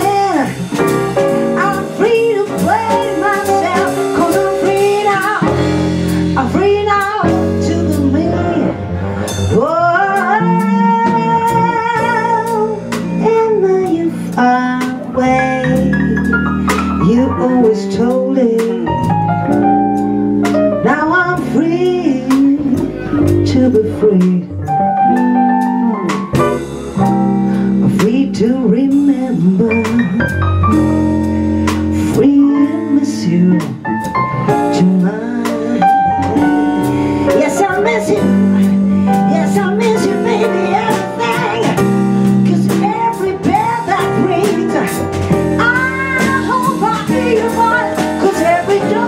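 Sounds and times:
woman singing: 0.0 - 0.9, 1.5 - 8.8, 9.5 - 19.1, 20.8 - 26.3, 27.8 - 30.4, 31.9 - 49.0
blues band playing: 0.0 - 49.0.

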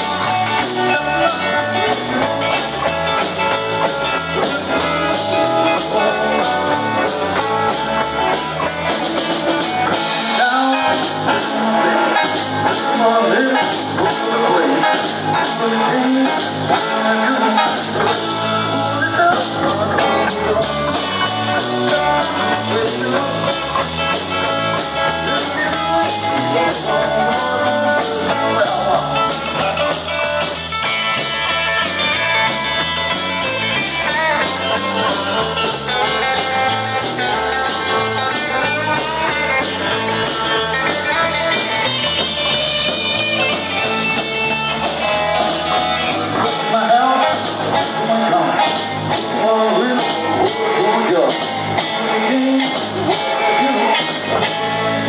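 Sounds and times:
drum kit beat: 0.0 - 55.0
live rock band playing: 0.0 - 55.0
sung vocal: 4.2 - 8.5, 9.8 - 30.4, 46.2 - 55.0.

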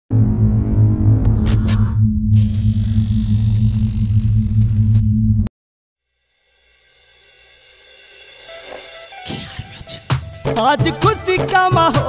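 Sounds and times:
deep electronic drone: 0.1 - 5.5.

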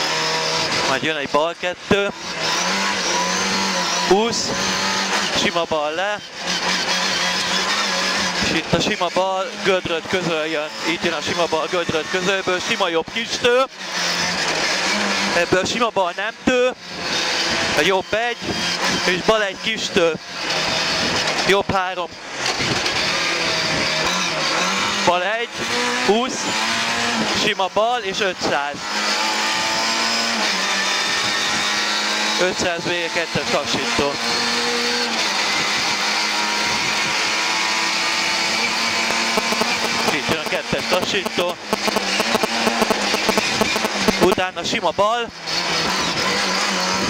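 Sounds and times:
car engine at high revs: 0.0 - 47.0
road noise: 0.0 - 47.0.

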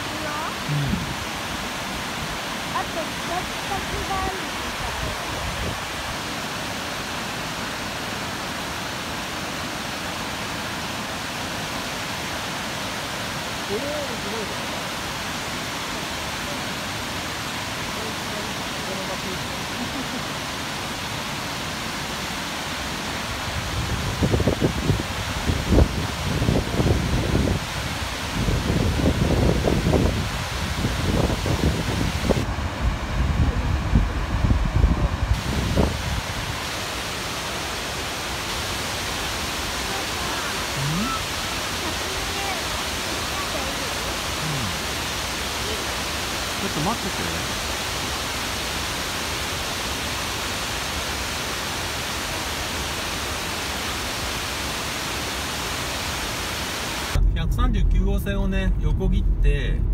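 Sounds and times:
waterfall rushing hiss: 0.0 - 57.2
low rumbles: 57.1 - 59.9.

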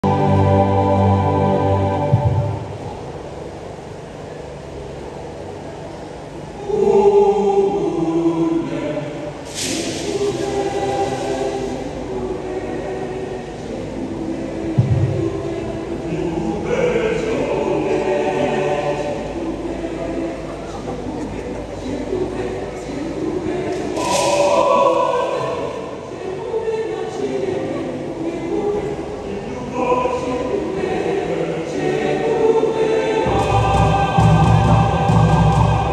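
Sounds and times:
choir singing a hymn: 0.0 - 35.9
low thump: 14.8 - 15.5.

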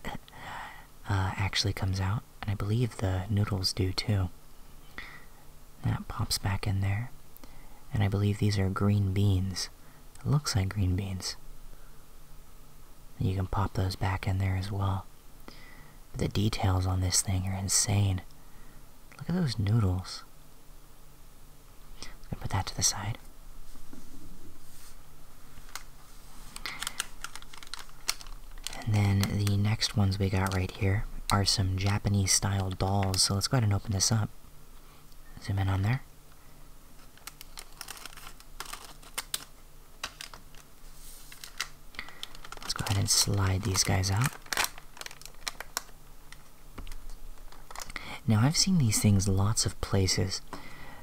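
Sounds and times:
plastic bag rustling: 23.6 - 33.3, 37.0 - 49.6
plastic packet crinkling: 25.5 - 33.5, 37.0 - 49.3.

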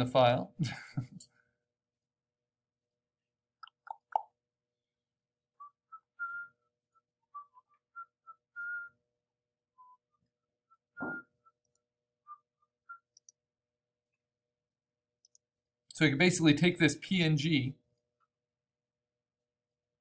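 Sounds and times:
soft whistling: 5.5 - 13.5.

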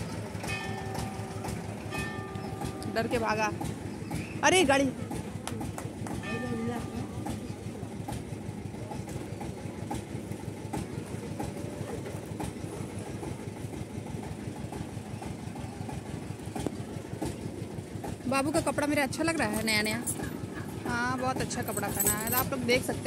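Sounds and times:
vehicle engine running: 0.0 - 23.0.

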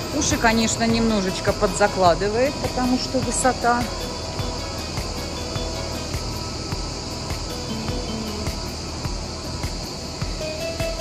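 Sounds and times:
cicadas buzzing: 0.0 - 11.0
music playing: 0.0 - 11.0.

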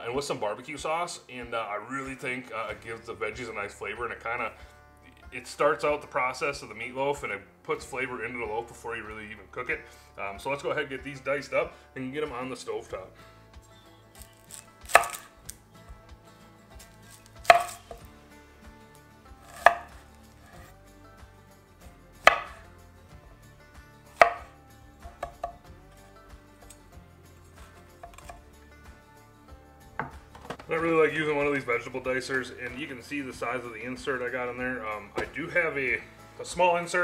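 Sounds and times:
knife chopping on cutting board: 14.9 - 15.3, 17.2 - 18.1, 19.4 - 20.7, 22.2 - 22.6, 24.2 - 25.6, 28.0 - 28.4.

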